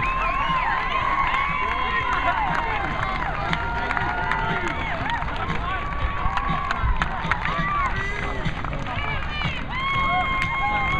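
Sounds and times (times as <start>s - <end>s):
people talking and calling out: 0.0s - 10.9s.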